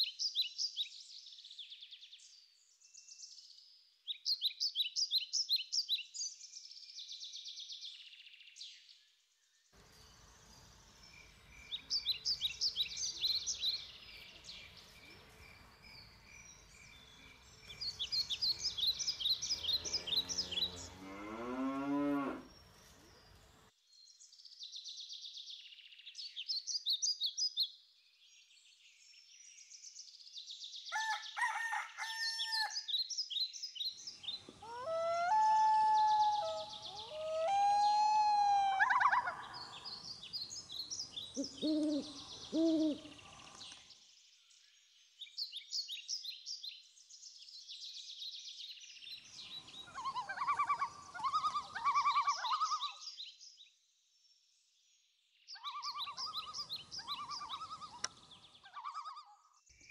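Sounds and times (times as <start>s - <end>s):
songbirds trilling: 9.8s - 23.7s, 38.8s - 44.0s, 48.5s - 53.4s, 55.5s - 59.5s
cow mooing: 19.7s - 22.5s
rooster crowing: 30.9s - 32.8s.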